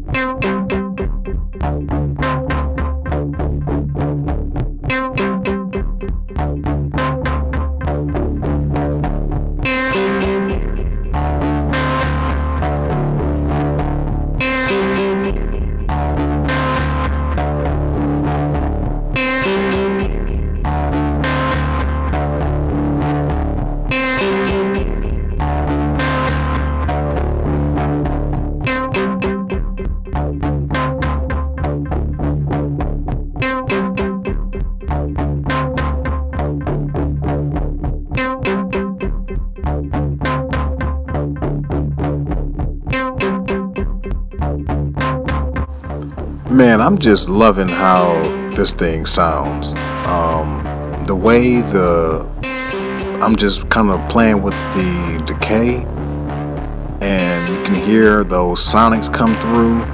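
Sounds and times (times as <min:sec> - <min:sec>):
bass-heavy synthesizer sequence: 0:00.0 - 0:59.9.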